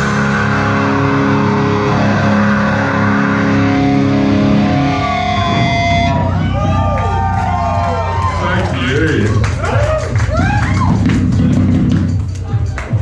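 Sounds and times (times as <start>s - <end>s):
distorted electric guitar chord ringing: 0.0s - 7.8s.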